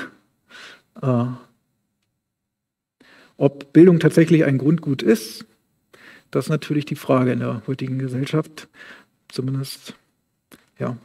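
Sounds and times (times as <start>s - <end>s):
man breathing in: 0.4s - 0.9s, 3.0s - 3.4s, 5.9s - 6.3s, 8.7s - 9.2s.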